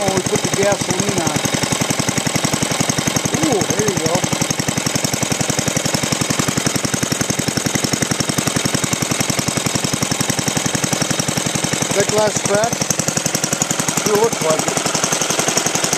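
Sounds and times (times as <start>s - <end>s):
single-cylinder engine running: 0.0s - 15.9s.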